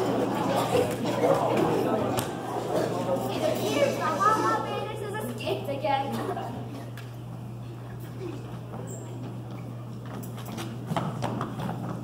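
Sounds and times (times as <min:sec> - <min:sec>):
footsteps on wooden stage: 0:08.3 - 0:12.0.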